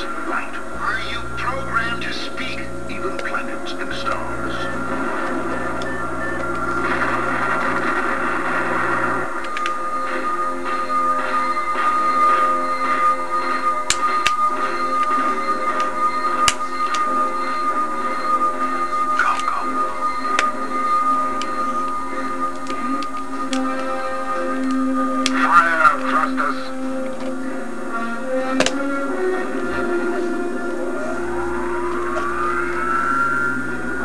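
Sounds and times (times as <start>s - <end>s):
steady high tone: 0.0s - 27.1s, 29.0s - 34.0s
film music through tv speaker: 0.0s - 34.0s
low hum: 0.0s - 34.0s
tone rising in pitch: 29.8s - 34.0s.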